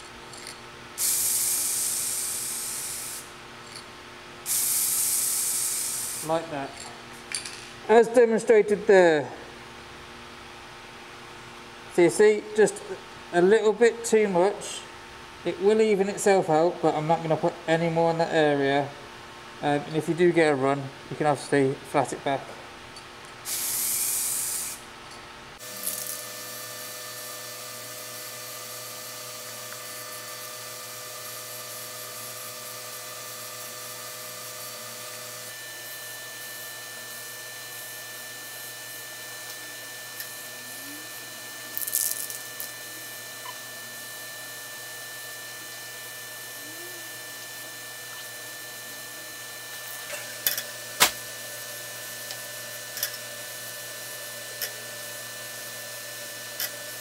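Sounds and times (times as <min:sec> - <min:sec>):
steady hum of held tones: 0:00.0 - 0:57.0.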